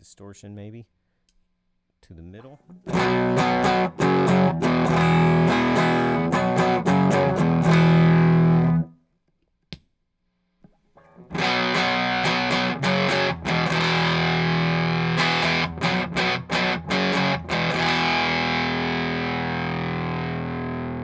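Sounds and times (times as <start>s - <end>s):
distorted electric guitar: 2.7s - 8.9s, 11.1s - 21.0s.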